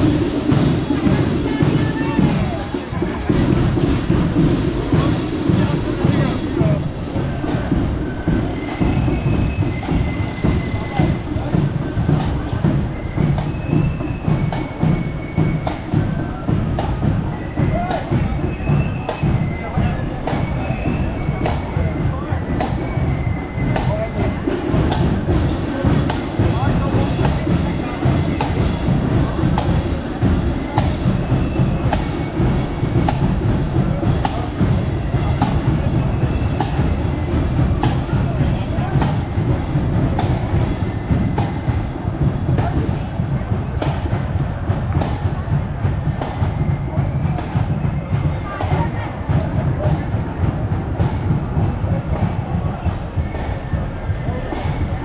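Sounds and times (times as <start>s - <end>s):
drums keeping march beat: 0.0s - 55.0s
marching band playing: 0.0s - 55.0s.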